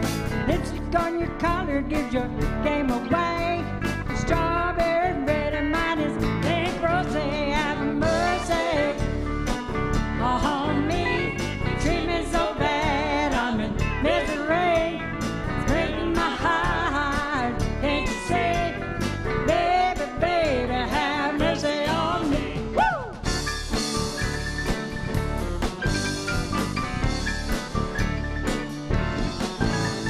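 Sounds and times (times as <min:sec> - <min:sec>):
live country band playing: 0:00.0 - 0:30.0
bending lead melody: 0:22.6 - 0:30.0.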